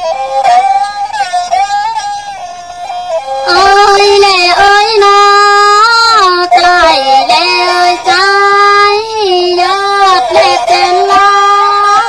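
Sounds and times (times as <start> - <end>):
woman singing in high voice: 3.4 - 12.0.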